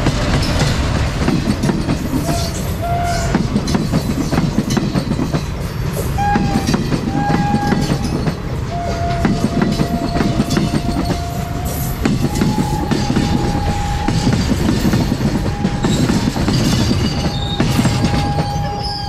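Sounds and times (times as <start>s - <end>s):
wheels clattering over rail joints: 0.0s - 11.3s
train coaches rumbling past: 0.0s - 19.0s
wheel squeals: 7.2s - 19.0s.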